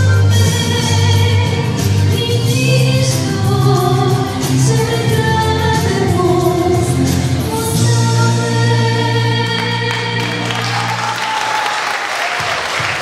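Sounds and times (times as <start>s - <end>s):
woman singing into microphone: 0.0s - 11.2s
instrumental accompaniment with bass: 0.0s - 11.4s.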